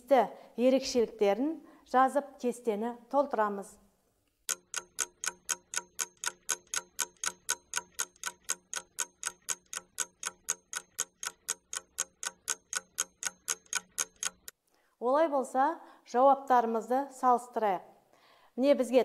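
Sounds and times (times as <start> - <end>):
rapid clock ticks: 4.4 - 14.6.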